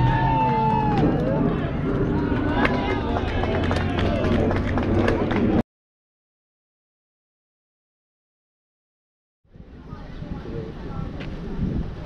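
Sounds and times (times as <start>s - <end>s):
steady low rumble: 0.0s - 5.6s
voices calling out and chattering: 0.0s - 5.6s.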